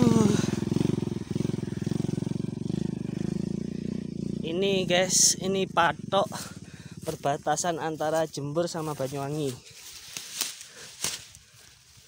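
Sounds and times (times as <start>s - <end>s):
motorcycle engine idling: 0.0s - 12.0s.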